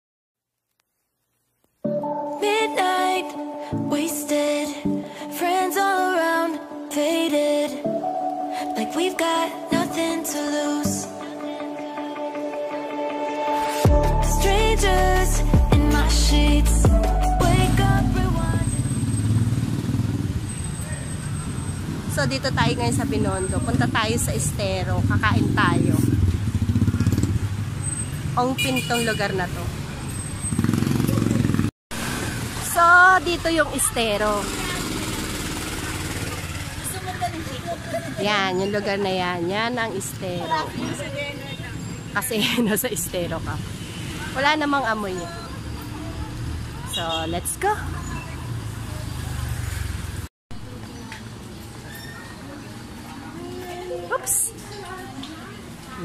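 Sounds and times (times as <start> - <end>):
street traffic: 2.1 - 56.0
vehicle engine rumbling: 14.2 - 51.4.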